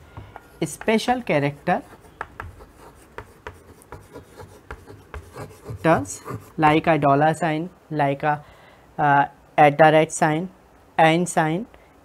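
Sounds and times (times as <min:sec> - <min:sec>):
chalk scraping on chalkboard: 0:00.2 - 0:06.8.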